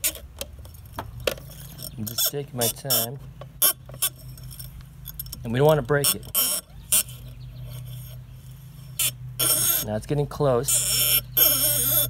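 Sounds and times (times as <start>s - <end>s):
fishing line scraping adhesive pad: 0.0s - 12.0s.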